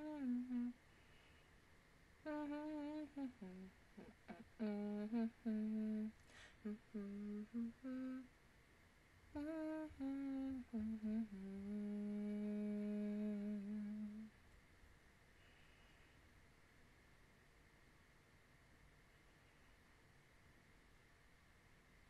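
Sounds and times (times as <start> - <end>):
woman humming a tune: 0.0 - 0.8, 2.2 - 8.3, 9.4 - 14.3.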